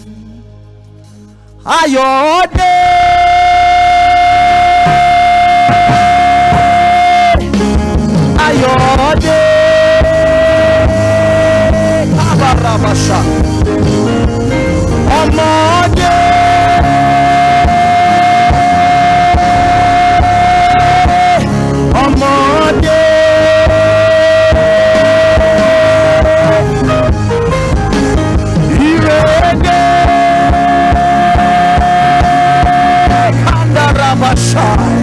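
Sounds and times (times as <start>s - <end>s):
gospel band playing: 0.0s - 35.0s
held high note: 2.7s - 7.6s, 15.2s - 27.1s.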